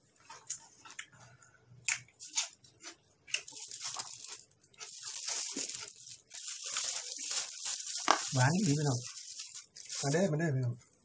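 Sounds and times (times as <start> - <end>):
chewing crunchy vegetable: 1.9 - 10.2.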